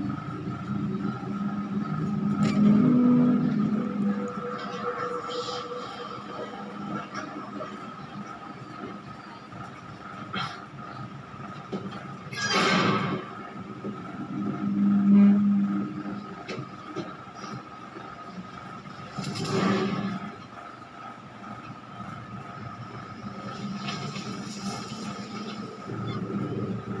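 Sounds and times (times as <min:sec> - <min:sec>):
low drone: 0:00.0 - 0:09.2, 0:12.5 - 0:17.6, 0:22.6 - 0:27.0
noise swells: 0:00.0 - 0:11.4, 0:21.4 - 0:27.0.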